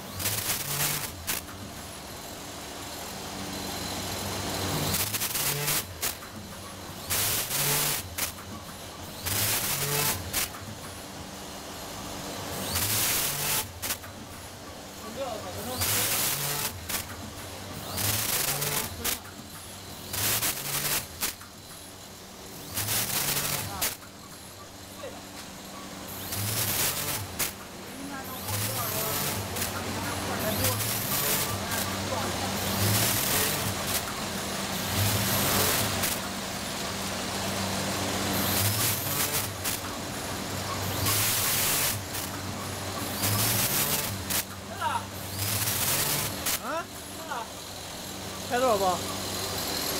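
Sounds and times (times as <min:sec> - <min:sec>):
packaging machine hissing bursts: 0:00.0 - 0:02.3, 0:03.9 - 0:11.4, 0:12.3 - 0:48.4.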